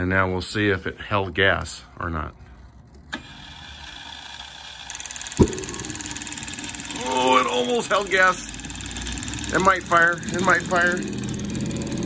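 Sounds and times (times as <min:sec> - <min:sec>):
jet turbine starter whirr: 0:02.9 - 0:12.0
sharp pop: 0:05.4 - 0:06.2
high whine: 0:05.4 - 0:08.0.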